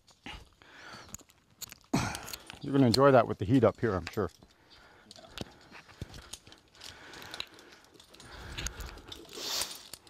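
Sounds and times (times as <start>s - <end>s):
climbing gear clicking: 0.0s - 10.0s
rope rustling: 3.5s - 10.0s.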